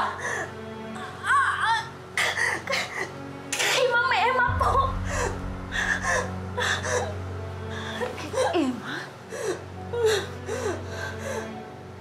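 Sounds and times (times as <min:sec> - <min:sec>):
soft background music: 0:00.0 - 0:12.0
woman sobbing: 0:04.6 - 0:11.5.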